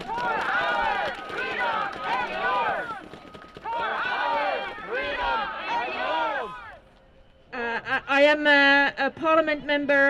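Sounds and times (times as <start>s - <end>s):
voices shouting: 0.0s - 6.8s.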